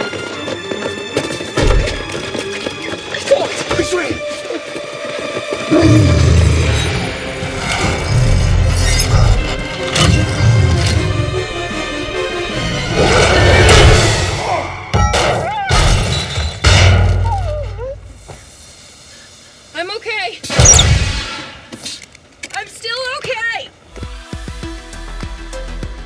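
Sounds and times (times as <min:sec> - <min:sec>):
orchestral film score: 0:00.0 - 0:18.2.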